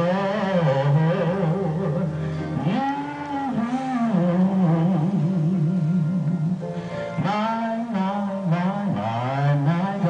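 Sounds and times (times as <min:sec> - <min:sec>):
man singing gospel: 0:07.2 - 0:10.0.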